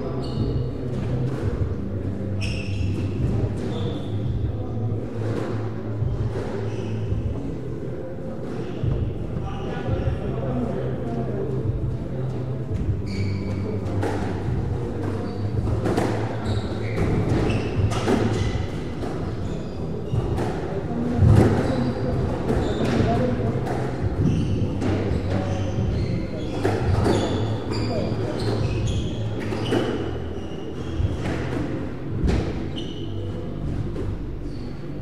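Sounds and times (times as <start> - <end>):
shoes squeaking on wooden floor: 2.4 - 4.4, 12.8 - 35.0.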